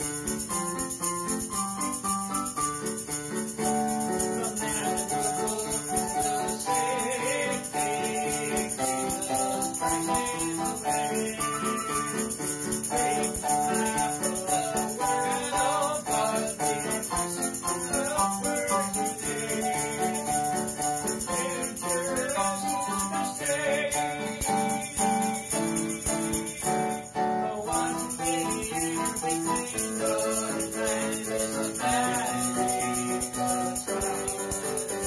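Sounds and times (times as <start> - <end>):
electronic keyboard playing: 0.0 - 35.0
tambourine shaken rhythmically: 0.0 - 35.0.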